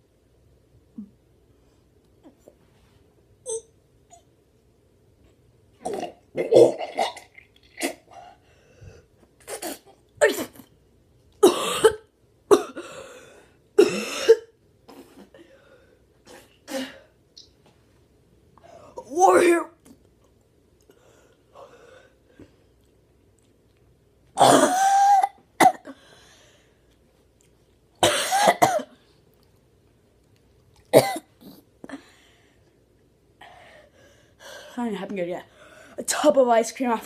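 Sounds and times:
boy coughing hard: 11.4 - 13.0, 13.8 - 14.5, 24.4 - 26.0, 28.0 - 29.0, 30.9 - 31.3.

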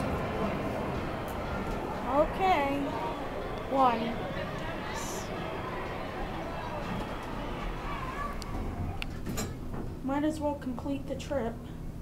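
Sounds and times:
murmur of voices: 0.0 - 9.3.

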